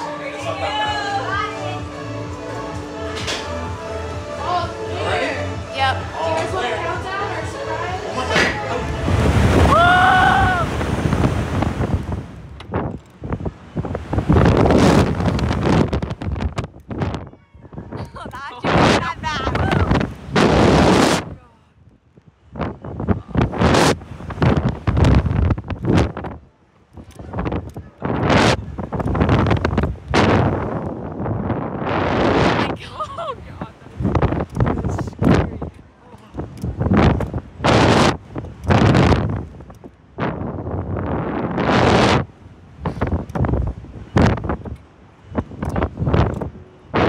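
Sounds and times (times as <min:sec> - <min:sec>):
wind rushing over microphone: 0:00.0 - 0:47.0.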